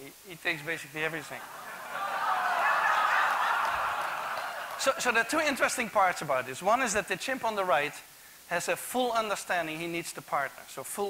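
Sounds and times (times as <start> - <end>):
audience laughing: 1.0 - 5.8.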